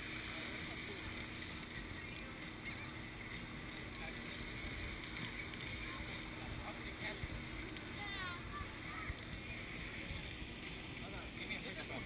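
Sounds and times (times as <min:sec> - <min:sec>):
faint voices: 0:00.0 - 0:12.0
ship engine rumble: 0:00.0 - 0:12.0.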